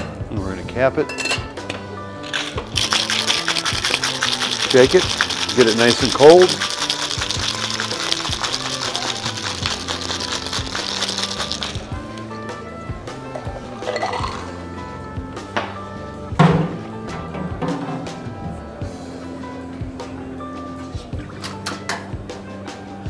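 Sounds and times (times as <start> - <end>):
background music: 0.0 - 23.0
ice rattling in cocktail shaker: 2.2 - 12.2, 13.8 - 14.5.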